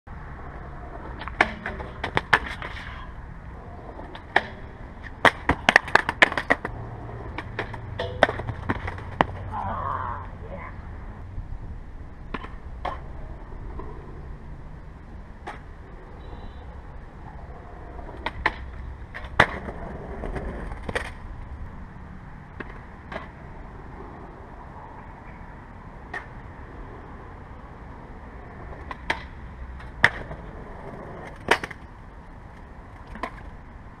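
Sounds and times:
outdoor noise: 0.0s - 34.0s
skateboard wheels rumbling: 0.1s - 34.0s
skateboard clacking on concrete: 0.9s - 3.1s, 3.8s - 9.5s, 17.4s - 21.2s, 28.6s - 31.9s, 32.5s - 33.6s.

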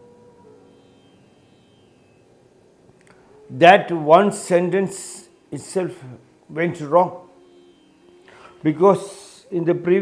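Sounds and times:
faint high ringing tone: 0.0s - 10.0s.

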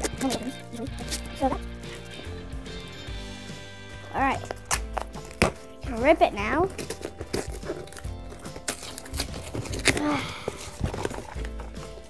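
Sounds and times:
background music: 0.0s - 12.0s
cardboard box being opened: 6.7s - 12.0s.

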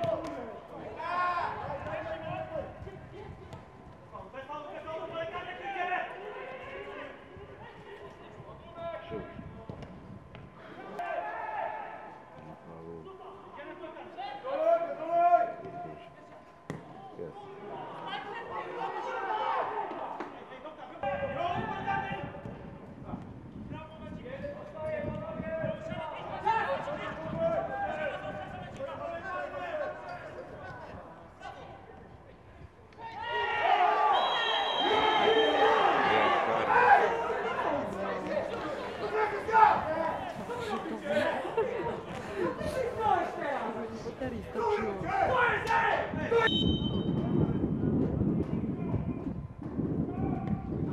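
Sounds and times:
players shouting: 33.0s - 43.8s.

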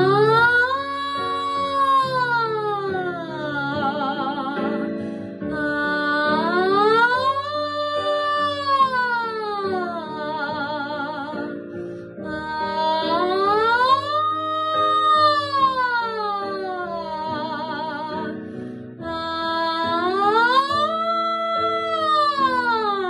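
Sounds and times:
woman singing pitch slides: 0.0s - 18.4s, 19.0s - 23.0s
accompaniment chords: 0.0s - 23.0s.

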